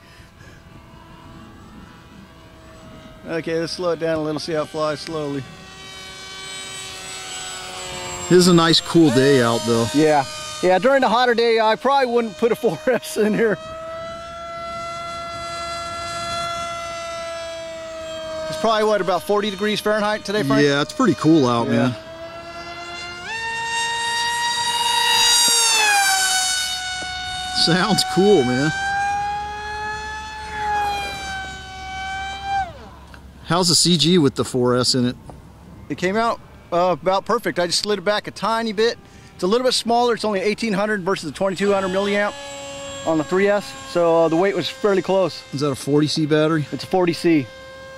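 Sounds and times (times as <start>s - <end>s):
electric model plane motor whining: 0.0s - 47.9s.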